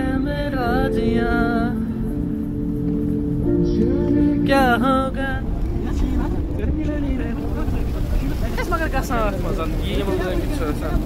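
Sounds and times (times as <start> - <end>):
car engine rumble: 0.0 - 11.0.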